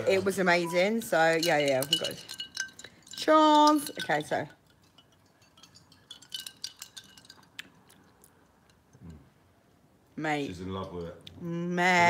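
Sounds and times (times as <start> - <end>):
ice cubes clinking in glass: 0.6 - 7.6.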